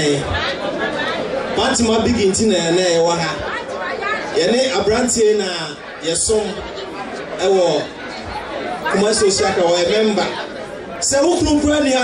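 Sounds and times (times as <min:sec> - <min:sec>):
man talking into a microphone: 0:00.0 - 0:00.4, 0:01.6 - 0:03.5, 0:04.4 - 0:06.7, 0:07.4 - 0:08.0, 0:08.8 - 0:10.4, 0:11.0 - 0:12.0
crowd chatter in a hall: 0:00.0 - 0:12.0.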